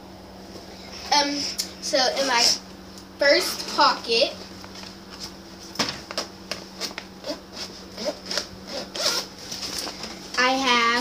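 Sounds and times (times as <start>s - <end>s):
zipper being pulled open: 7.2s - 9.3s.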